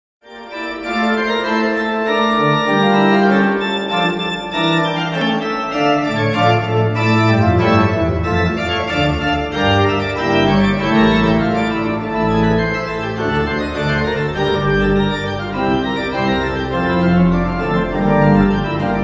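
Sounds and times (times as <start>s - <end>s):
organ chords over bass notes: 0.5s - 19.0s.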